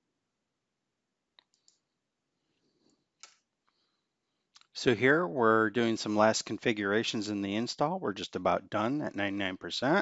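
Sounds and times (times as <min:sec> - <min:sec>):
man speaking: 0:04.7 - 0:10.0.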